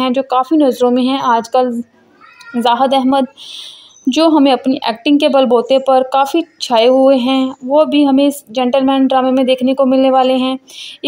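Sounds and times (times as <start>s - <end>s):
woman narrating: 0.0s - 11.0s.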